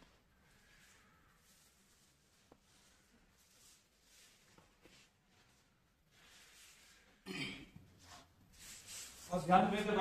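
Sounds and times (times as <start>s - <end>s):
faint room hiss: 0.0s - 10.0s
person clearing throat: 7.2s - 7.8s.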